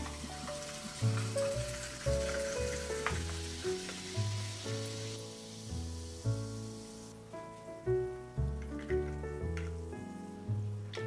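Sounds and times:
soda water fizzing in a glass: 0.0 - 7.0.

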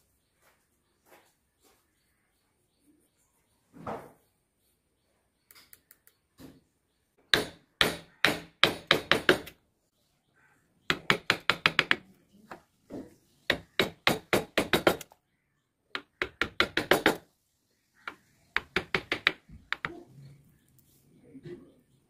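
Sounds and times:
chisel tapping into wood: 18.1 - 20.0.

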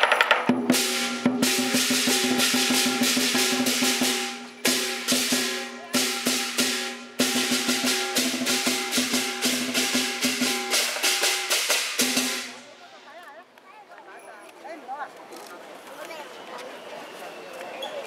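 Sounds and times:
gongs ringing: 0.0 - 12.7
big drum beaten fast: 0.0 - 12.8
cymbals clashing: 0.0 - 13.0.

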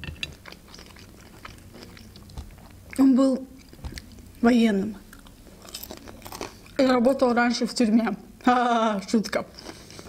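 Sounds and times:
chewing dumplings: 0.0 - 7.0, 9.3 - 10.0.

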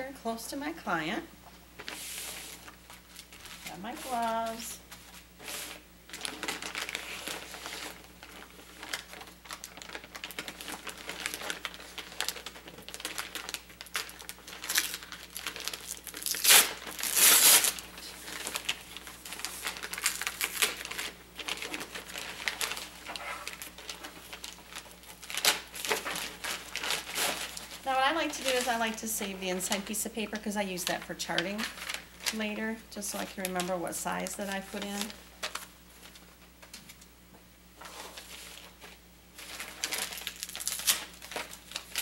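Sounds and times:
plastic wrapper crinkling: 1.8 - 37.1, 37.8 - 42.0.

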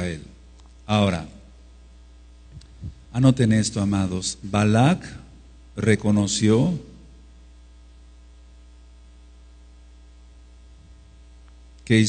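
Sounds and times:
low electrical hum: 0.0 - 12.0
man's voice: 3.1 - 7.0.

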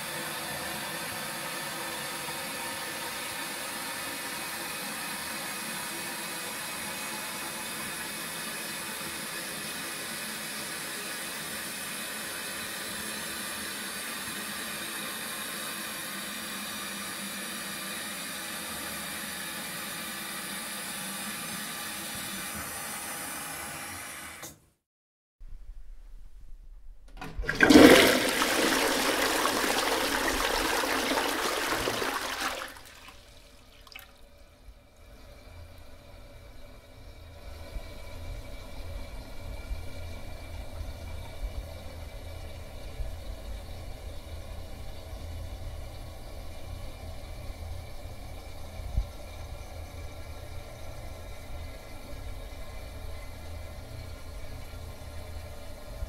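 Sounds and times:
toilet flushing: 0.0 - 24.6, 27.2 - 56.0
low hum: 25.4 - 27.6
faint running water: 27.2 - 56.0.

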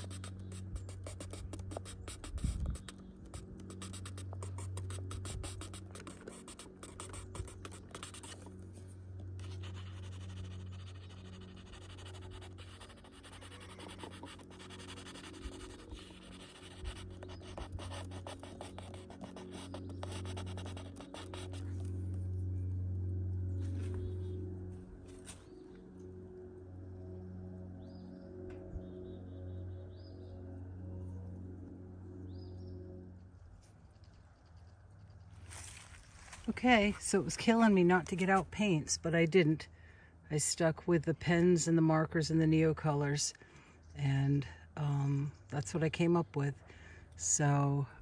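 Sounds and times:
pencil scratching on paper: 0.0 - 8.5, 9.4 - 21.7
soft ambient music: 0.0 - 39.2.

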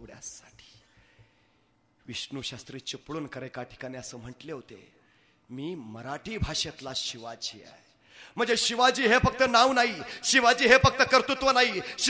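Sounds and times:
man's voice: 5.5 - 12.0.

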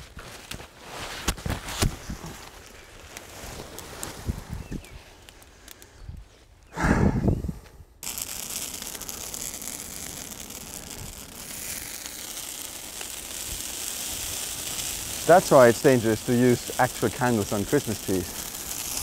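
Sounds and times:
bonfire crackling: 0.0 - 19.0.

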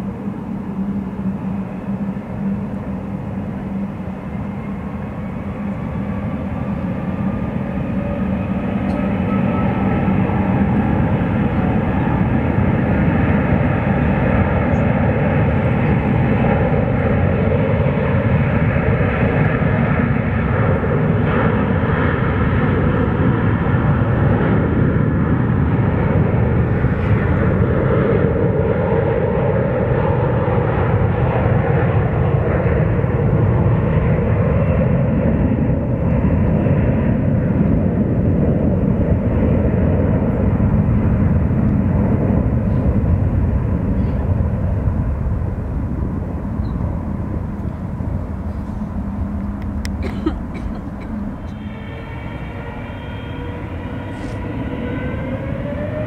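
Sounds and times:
jet engines at takeoff power: 0.0 - 56.0.

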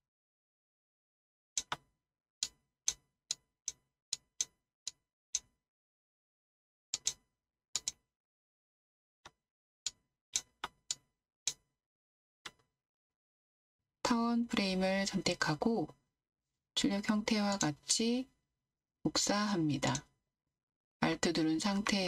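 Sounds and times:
computer mouse clicking: 1.6 - 1.8, 7.0 - 7.2, 7.8 - 8.0, 17.5 - 17.8
computer mouse click: 7.0 - 7.2.

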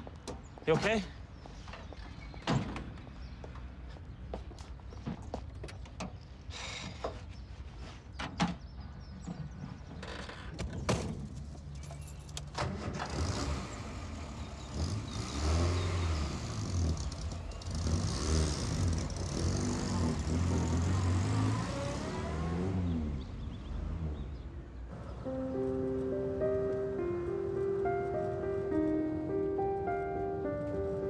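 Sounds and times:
van engine revving: 12.6 - 25.2.

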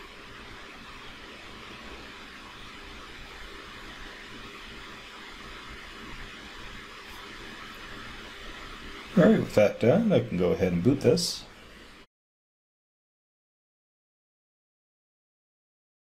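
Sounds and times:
background hiss: 0.0 - 12.1.

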